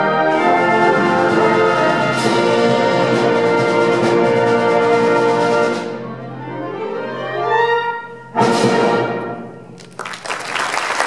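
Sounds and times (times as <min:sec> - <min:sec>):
audience applause: 0:09.8 - 0:11.0.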